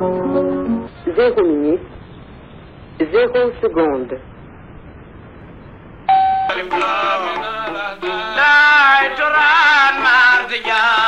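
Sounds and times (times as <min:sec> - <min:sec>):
music: 0:00.0 - 0:00.9, 0:06.5 - 0:11.0
radio time signal beep: 0:06.1 - 0:06.6.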